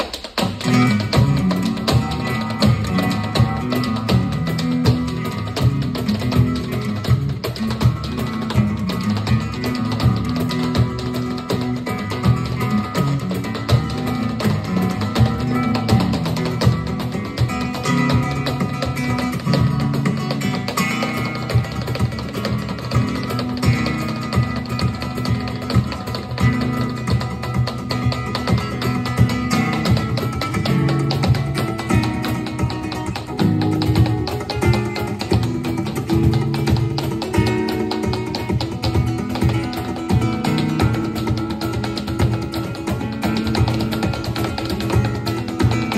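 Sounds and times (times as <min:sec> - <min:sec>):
flamenco guitar over steady beat: 0:00.0 - 0:45.9.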